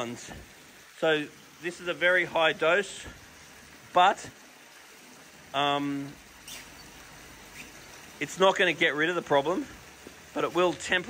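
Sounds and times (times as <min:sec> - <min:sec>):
water spouts splashing into pond: 0:00.0 - 0:11.0.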